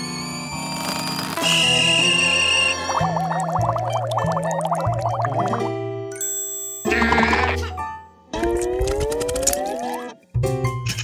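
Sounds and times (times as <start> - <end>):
cartoon music: 2.1 - 5.7, 6.9 - 7.8
warbling wobbling tone: 2.9 - 5.7.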